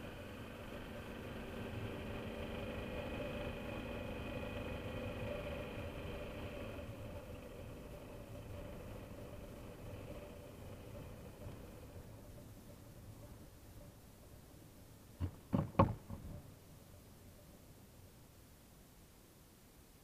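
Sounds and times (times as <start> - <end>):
motorcycle engine running: 0.0 - 14.4.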